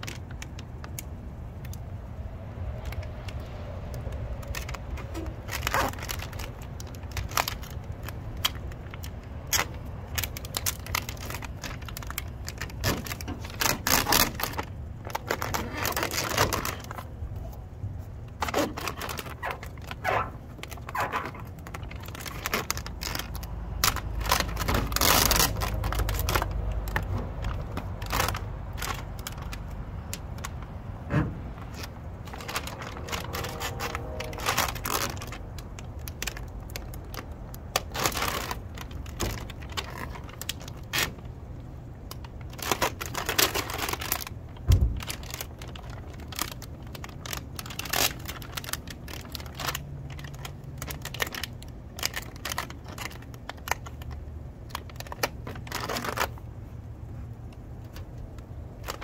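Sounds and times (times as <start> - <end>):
plastic sheet crinkling and rustling: 2.7 - 56.5, 57.1 - 59.0.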